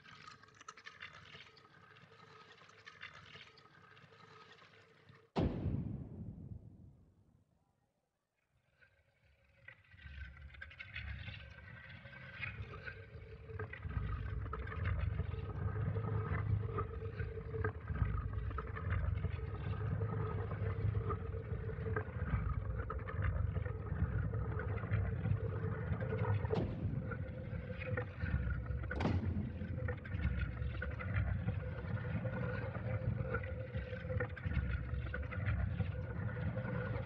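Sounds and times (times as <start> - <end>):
low droning rumble: 5.4 - 7.2, 17.6 - 37.0.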